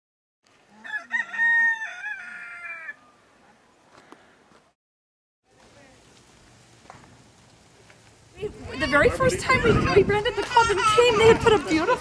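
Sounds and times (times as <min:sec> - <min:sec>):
rooster crowing: 0:00.8 - 0:03.2.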